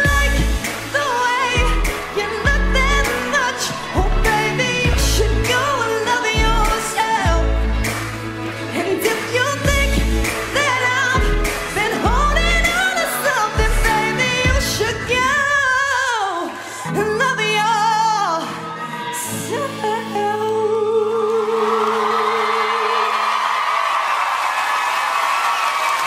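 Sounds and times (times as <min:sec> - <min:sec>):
backing track: 0:00.0 - 0:16.7
woman singing pop ballad: 0:00.0 - 0:23.5.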